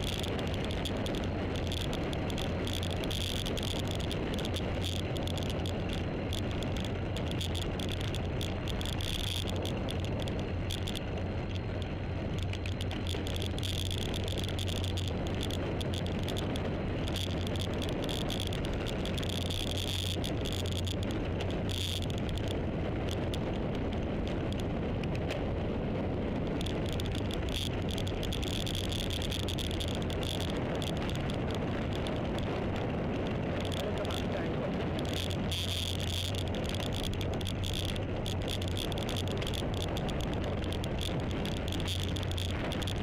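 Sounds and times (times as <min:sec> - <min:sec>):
constant low hum: 0:00.0 - 0:43.0
wind and road noise: 0:00.0 - 0:43.0.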